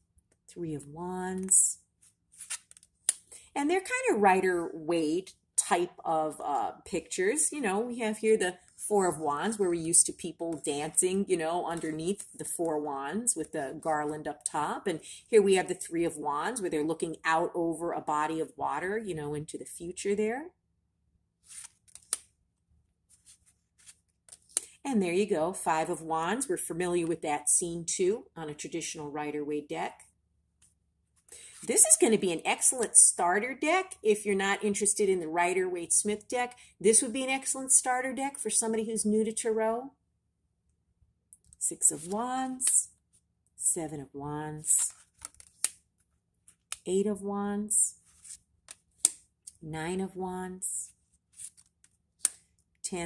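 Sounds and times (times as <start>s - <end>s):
person speaking: 0.5s - 1.8s, 3.6s - 17.9s, 41.6s - 42.9s, 49.5s - 50.9s
cards swishing: 2.0s - 3.2s, 21.4s - 22.3s, 23.1s - 24.5s, 48.0s - 49.2s, 51.3s - 52.4s.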